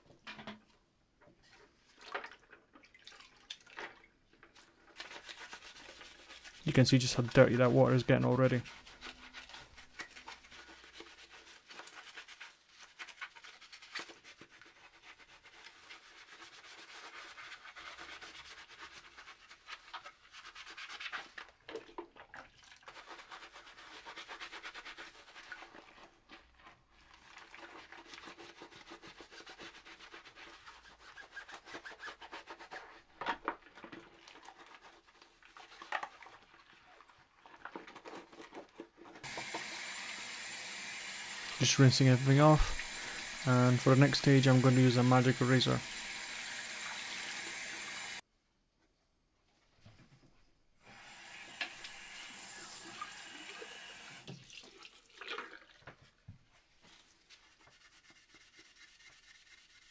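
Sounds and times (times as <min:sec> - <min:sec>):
sponge scrubbing plastic in water: 0:01.4 - 0:48.2, 0:52.6 - 0:59.9
tap water running: 0:39.2 - 0:48.2, 0:50.9 - 0:56.0.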